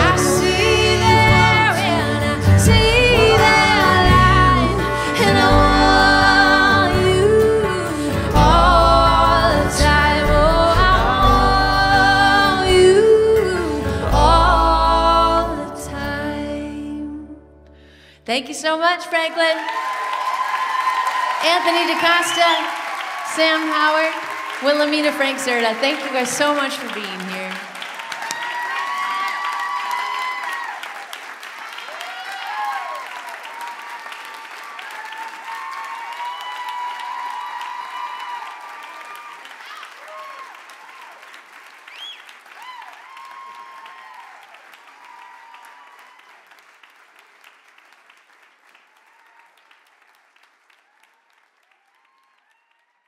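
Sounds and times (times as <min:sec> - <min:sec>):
audience applauding: 0:00.0 - 0:09.6, 0:19.1 - 0:53.0
shouts and whoops: 0:19.4 - 0:23.4, 0:27.8 - 0:41.2, 0:42.0 - 0:46.4, 0:51.7 - 0:53.0.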